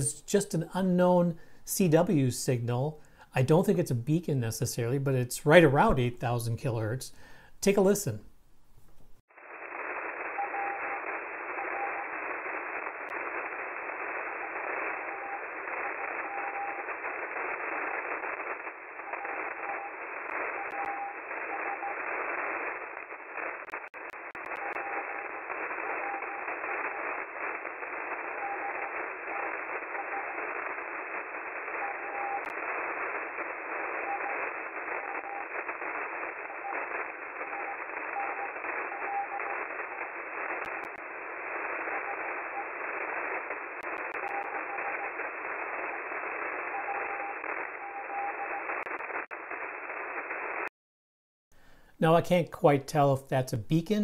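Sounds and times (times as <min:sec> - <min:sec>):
radio static hiss: 0:00.0 - 0:07.1, 0:09.2 - 0:50.7
faint morse code tone: 0:10.3 - 0:12.2, 0:14.9 - 0:17.1, 0:19.0 - 0:22.1, 0:24.4 - 0:27.0, 0:28.1 - 0:32.6, 0:33.8 - 0:40.0, 0:41.8 - 0:42.8, 0:43.8 - 0:48.9.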